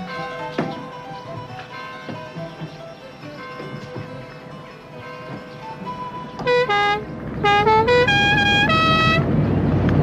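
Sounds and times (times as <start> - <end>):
road noise: 0.0 - 10.0
car engine: 5.4 - 10.0
musical car horn tune: 6.3 - 9.3.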